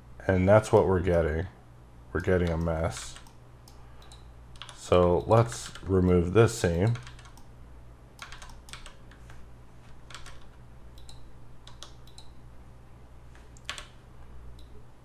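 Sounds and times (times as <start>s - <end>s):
steady low hum: 0.0s - 15.0s
mouse clicks: 2.2s - 5.8s, 11.0s - 12.4s
keyboard key presses: 8.2s - 9.2s.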